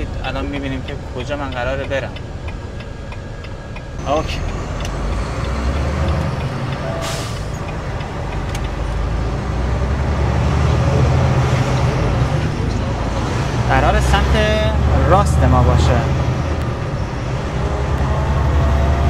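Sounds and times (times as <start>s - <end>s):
diesel truck engine rumble: 0.0s - 19.0s
air hiss: 6.9s - 7.6s.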